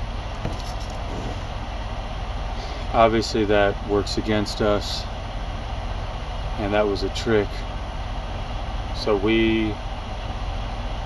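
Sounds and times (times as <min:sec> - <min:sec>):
engine idling hum: 0:00.0 - 0:11.0.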